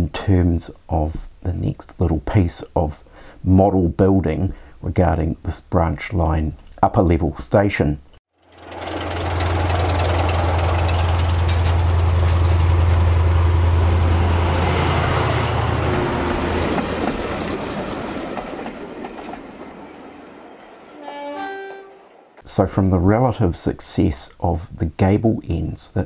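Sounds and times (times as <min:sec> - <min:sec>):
wheels rumbling on track: 0:08.4 - 0:20.8
diesel locomotive engine drone: 0:08.4 - 0:22.4.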